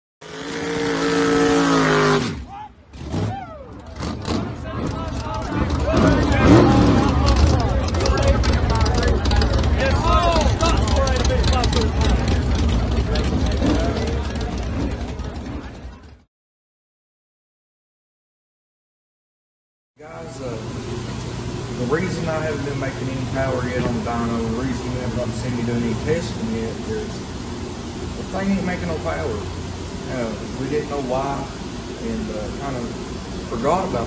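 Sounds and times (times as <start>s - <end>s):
vehicle engine rumble: 0.4s - 16.3s, 20.0s - 34.0s
people's voices: 2.5s - 16.3s, 20.0s - 34.0s
held pitched tone: 20.0s - 34.0s.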